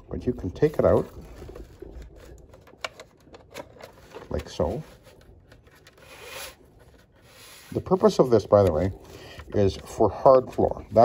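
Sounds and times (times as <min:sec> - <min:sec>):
plastic strip rubbing scrape: 0:05.6 - 0:08.8.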